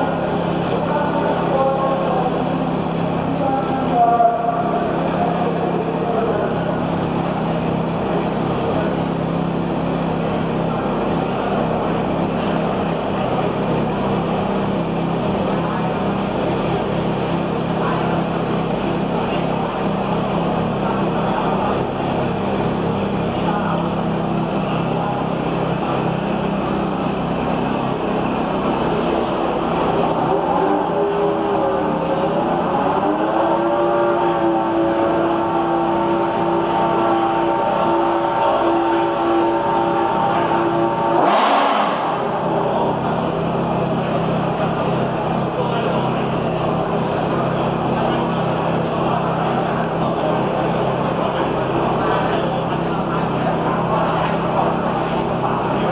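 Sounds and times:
car engine idling: 0.0s - 55.9s
higher engine tone gliding up: 0.0s - 55.9s.

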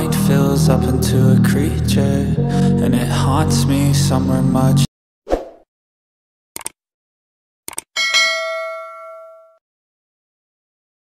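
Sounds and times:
bell ding: 8.0s - 9.6s.

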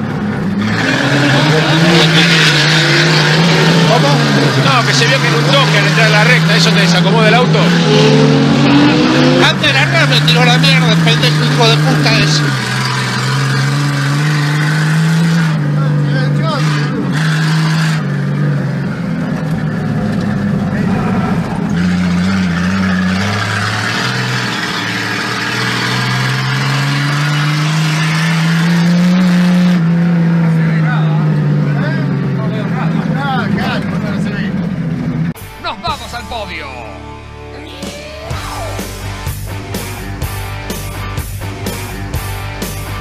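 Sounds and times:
race car engine revving: 0.0s - 35.4s.

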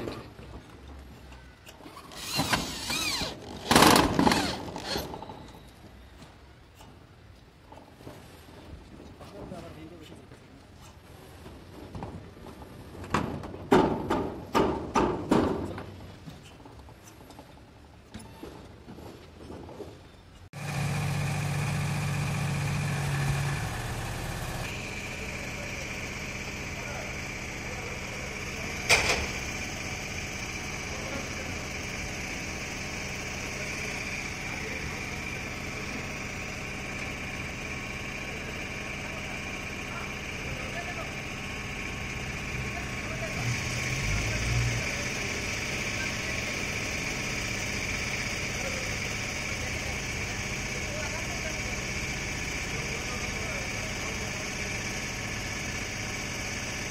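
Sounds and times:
machine drone: 2.1s - 5.4s, 20.6s - 56.9s
high whine: 20.6s - 37.2s.

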